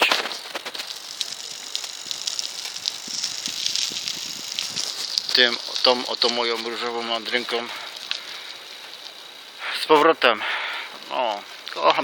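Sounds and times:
bicycle rattling and ticking: 0.0 - 9.5
steady hiss: 0.0 - 12.0.

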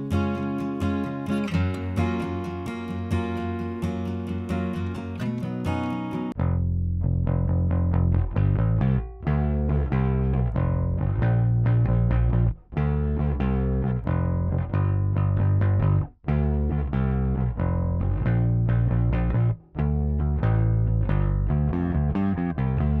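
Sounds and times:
bass guitar loop: 0.0 - 23.0.

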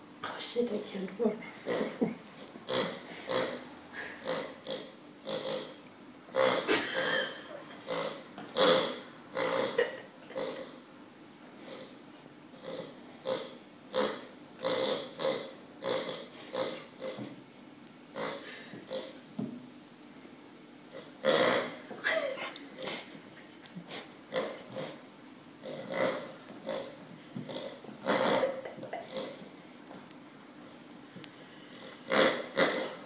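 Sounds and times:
toy pig oinking: 2.7 - 10.8, 12.6 - 17.2, 25.7 - 27.0, 32.1 - 33.0.

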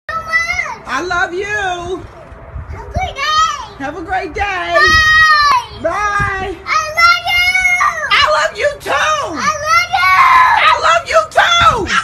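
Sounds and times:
high-pitched voice screaming: 9.2 - 12.0.

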